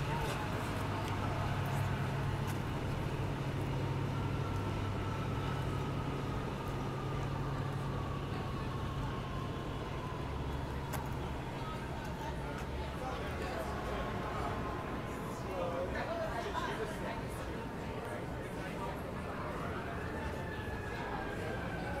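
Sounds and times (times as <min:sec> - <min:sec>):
vehicle engine humming: 0:00.0 - 0:15.8
street noise: 0:00.0 - 0:22.0.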